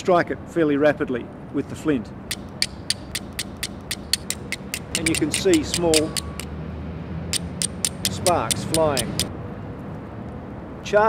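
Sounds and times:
flint striking steel clicks: 2.3s - 6.5s, 7.3s - 9.3s.

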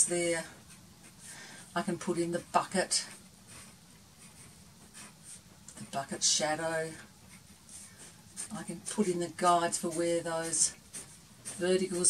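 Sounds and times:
pencil scratching on paper: 0.0s - 12.0s.

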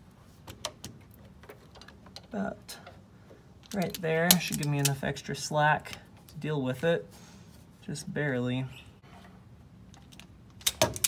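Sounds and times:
hand tools clicking: 3.6s - 5.0s.

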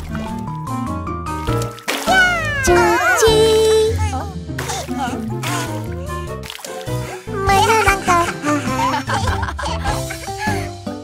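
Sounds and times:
high cartoon voice singing: 2.2s - 4.3s.

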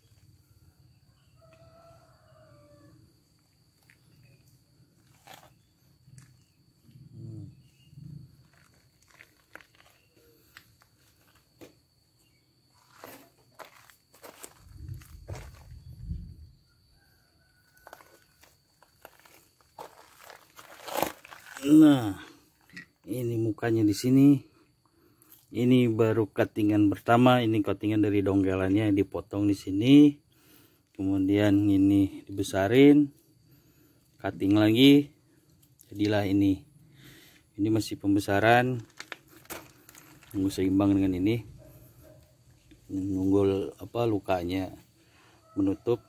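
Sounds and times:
footsteps: 12.7s - 16.0s, 17.8s - 21.6s, 38.8s - 40.4s.

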